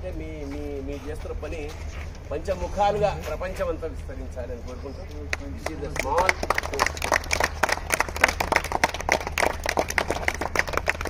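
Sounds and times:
people clapping: 5.1s - 11.0s.

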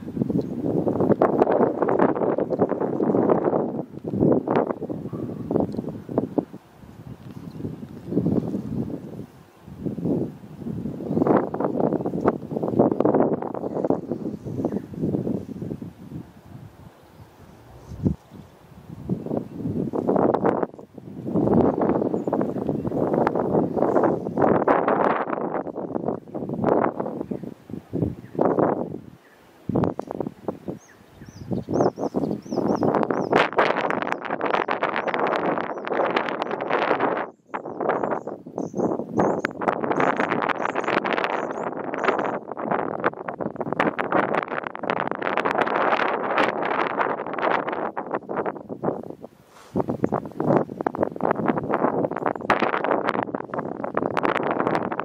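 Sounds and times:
wind buffeting microphone: 0.0s - 55.0s
bird chirping: 30.6s - 33.4s, 37.2s - 42.4s.

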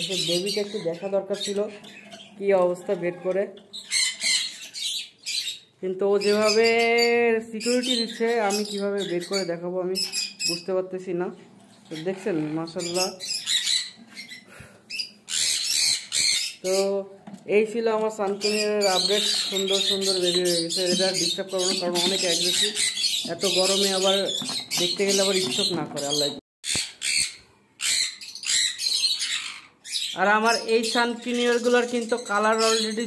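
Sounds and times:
parrots screeching: 0.0s - 6.8s, 11.9s - 16.8s, 18.5s - 30.6s.

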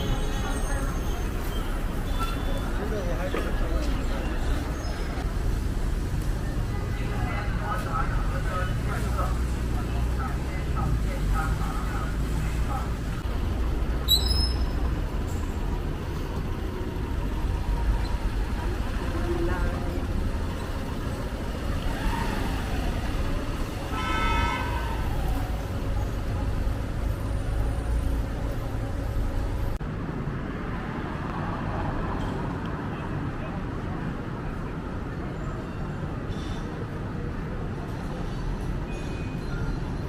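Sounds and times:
rumble of passing vehicles: 0.0s - 40.0s
car horn: 23.8s - 24.9s.

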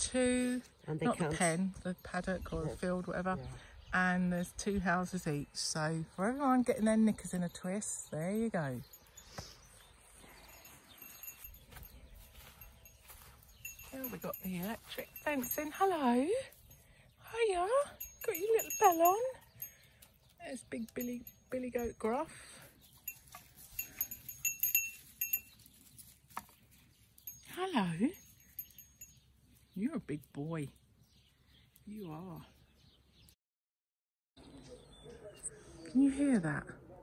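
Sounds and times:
faint outdoor ambience: 0.0s - 33.3s, 34.4s - 37.0s
goat collar bell jingling: 6.2s - 30.4s.

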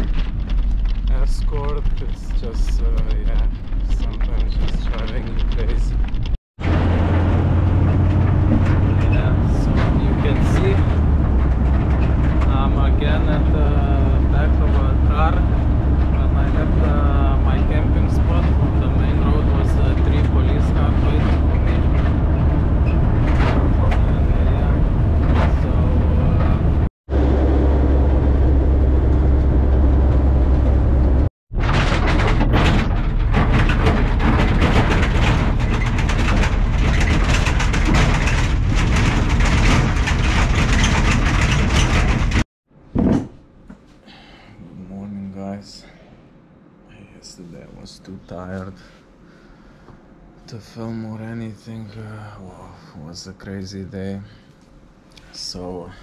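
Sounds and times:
low engine drone: 0.0s - 42.4s
wind and road noise: 0.0s - 42.4s.

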